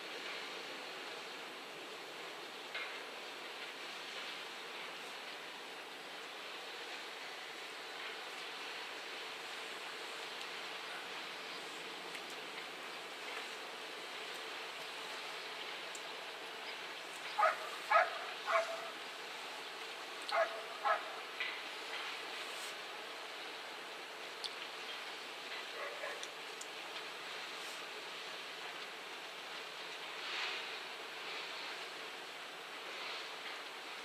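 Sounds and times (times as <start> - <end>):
steady background hiss: 0.0 - 34.0
sharp animal calls: 17.4 - 18.9, 20.3 - 21.2.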